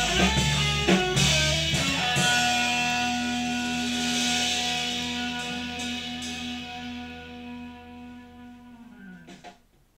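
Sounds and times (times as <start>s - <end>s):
electric guitar chord ringing: 0.0s - 9.4s.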